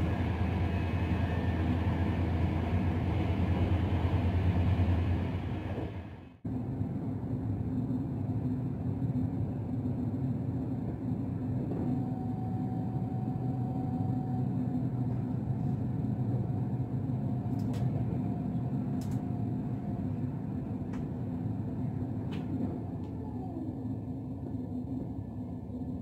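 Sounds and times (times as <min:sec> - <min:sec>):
train carriage rumble: 0:00.0 - 0:26.0
light clicks: 0:19.0 - 0:19.3.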